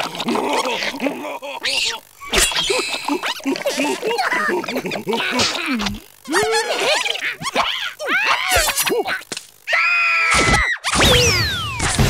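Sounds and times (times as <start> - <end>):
cartoon character screaming: 1.6 - 3.4, 6.3 - 11.5.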